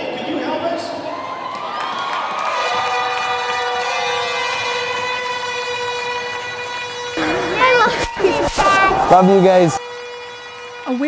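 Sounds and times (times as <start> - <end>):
crowd cheering: 0.1 - 9.8
arena horn long tone: 2.4 - 11.0.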